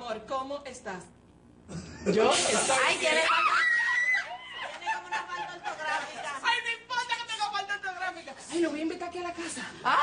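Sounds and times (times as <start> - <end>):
women screaming with laughter: 3.1 - 5.5.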